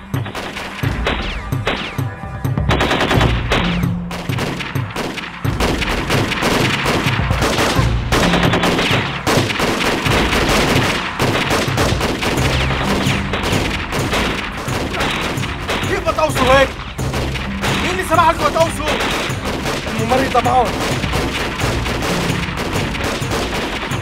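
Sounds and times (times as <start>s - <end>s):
rifle gunfire: 0.0s - 2.1s, 2.7s - 24.0s
automatic fire bursts: 2.7s - 24.0s.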